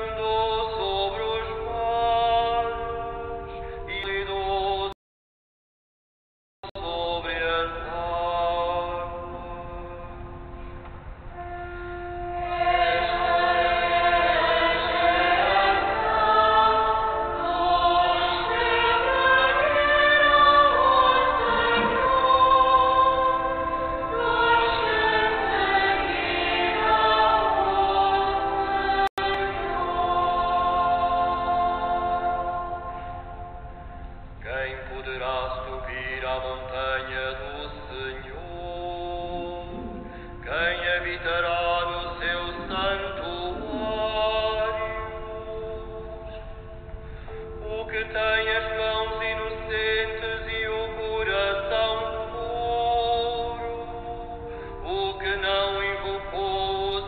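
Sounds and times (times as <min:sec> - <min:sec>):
choir singing a hymn: 0:11.4 - 0:46.5.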